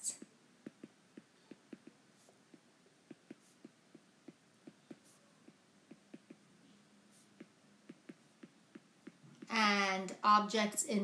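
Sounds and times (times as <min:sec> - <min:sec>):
stylus tapping on tablet screen: 0:00.1 - 0:06.5, 0:07.2 - 0:09.9
stylus tip scratching: 0:00.1 - 0:06.5.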